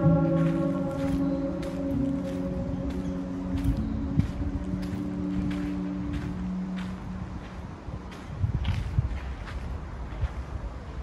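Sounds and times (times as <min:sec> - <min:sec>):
low humming tones: 0:00.0 - 0:08.6
footsteps on gravel: 0:00.0 - 0:11.0
wind rumbling on microphone: 0:00.0 - 0:11.0.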